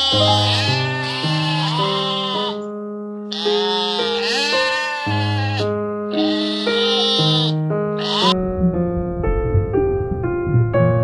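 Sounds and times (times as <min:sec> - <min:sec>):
sheep bleating: 0:00.0 - 0:02.6, 0:03.3 - 0:08.4.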